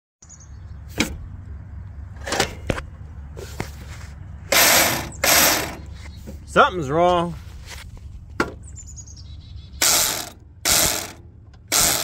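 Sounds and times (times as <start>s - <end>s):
electric starter cranking: 4.5s - 5.8s, 9.8s - 12.0s.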